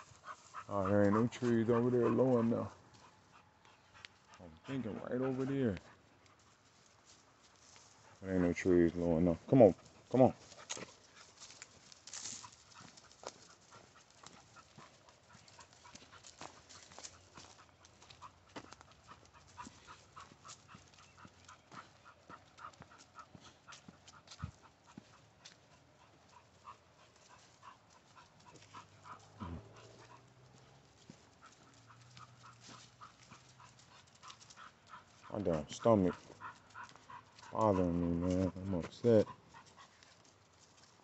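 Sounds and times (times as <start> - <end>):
dog panting: 0.0 - 41.0
footsteps on dirt trail: 0.0 - 41.0.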